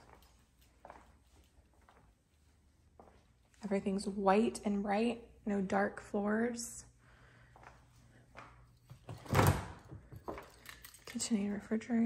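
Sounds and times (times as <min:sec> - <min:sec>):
door opening with thump: 0:09.1 - 0:10.0.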